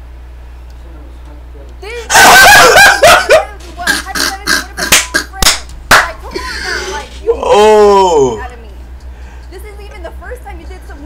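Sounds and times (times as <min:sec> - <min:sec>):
man laughing hard: 0:02.1 - 0:03.5
sharp smacks: 0:04.9 - 0:06.0.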